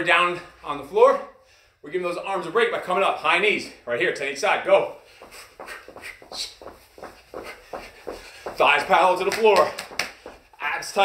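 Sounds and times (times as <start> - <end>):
soft footfalls on carpet: 4.8 - 11.0.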